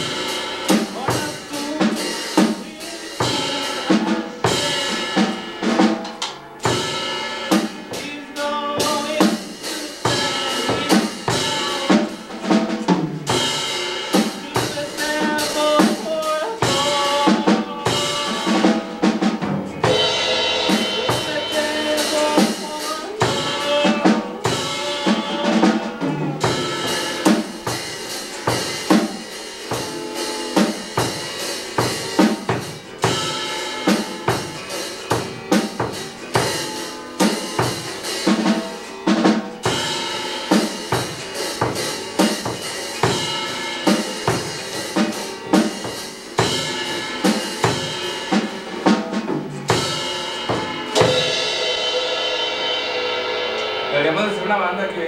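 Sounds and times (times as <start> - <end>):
fast busy drumming: 0.0 - 55.0
sustained guitar notes: 0.0 - 55.0.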